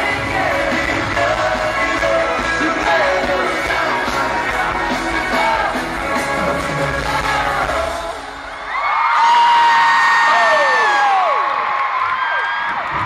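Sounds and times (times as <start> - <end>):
live band music: 0.0 - 8.3
crowd screaming: 8.0 - 13.0.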